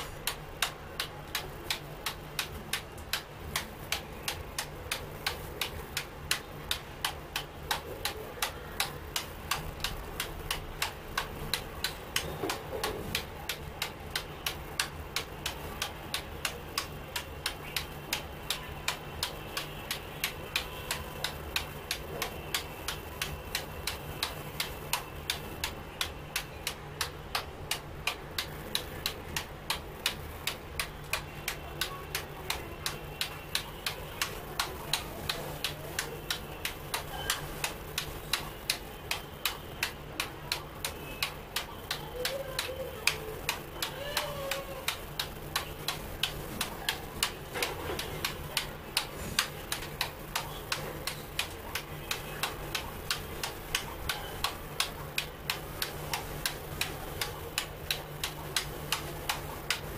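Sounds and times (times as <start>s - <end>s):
ball bouncing on keyboard: 0.0s - 59.9s.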